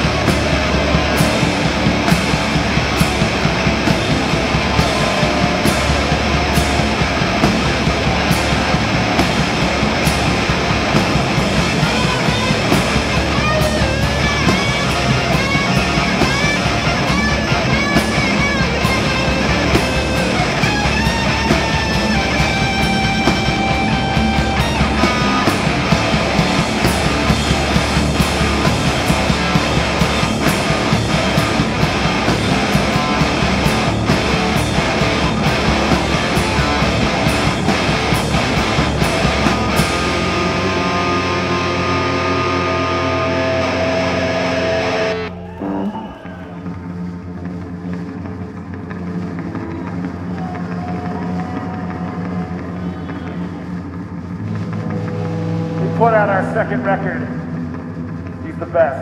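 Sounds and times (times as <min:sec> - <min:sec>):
bass guitar: 0:00.0 - 0:59.0
distorted electric guitars: 0:00.0 - 0:59.0
drum kit: 0:00.0 - 0:59.0.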